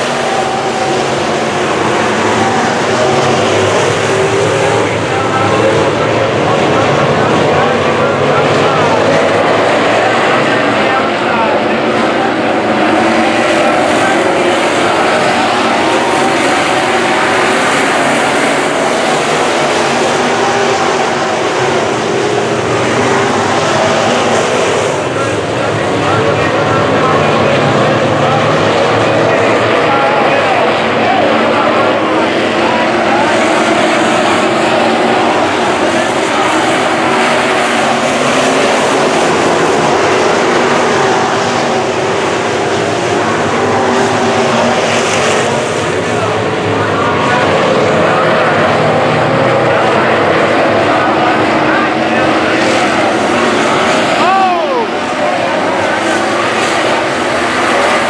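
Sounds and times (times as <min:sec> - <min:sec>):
race car engines roaring: 0:00.0 - 0:58.0
race car passing close: 0:00.0 - 0:58.0.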